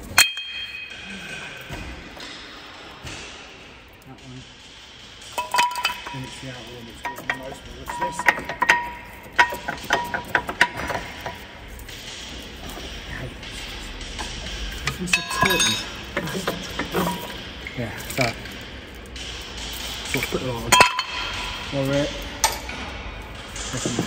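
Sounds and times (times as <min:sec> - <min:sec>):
metal clinks and knocks: 0:00.0 - 0:24.0.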